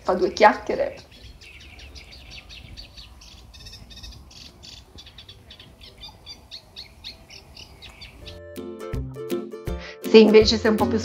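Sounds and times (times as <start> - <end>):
small birds chirping: 0.0 - 8.6.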